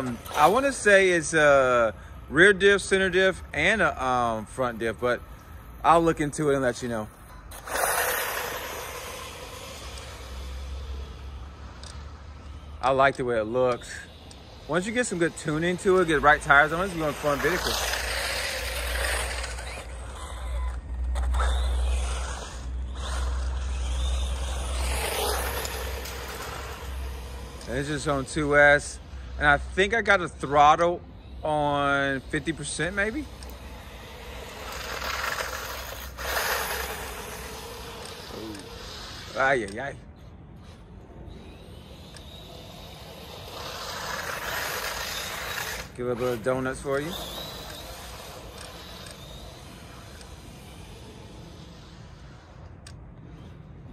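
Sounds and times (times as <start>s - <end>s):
faint motor whine: 0.0s - 53.9s
rc car speeding on asphalt: 0.0s - 53.9s.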